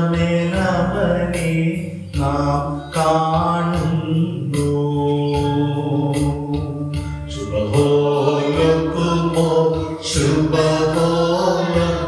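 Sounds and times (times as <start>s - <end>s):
group singing a hymn: 7.4s - 12.0s.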